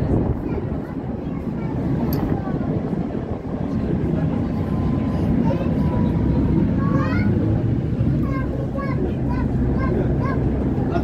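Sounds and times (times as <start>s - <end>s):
tram rumbling on rails: 0.0s - 11.0s.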